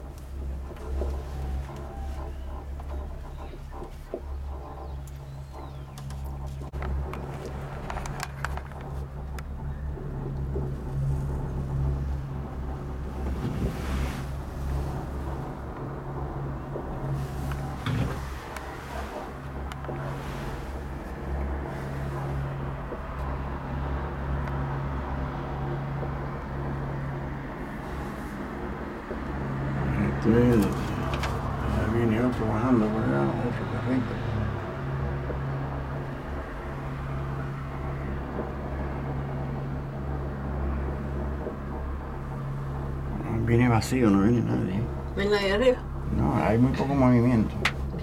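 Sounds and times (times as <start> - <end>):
cable car cabin hum: 0.0 - 48.0.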